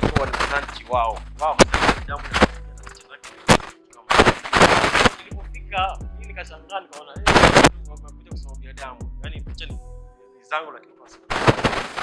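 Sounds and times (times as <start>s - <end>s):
loud bursts of noise: 4.1s - 5.1s, 7.3s - 7.7s.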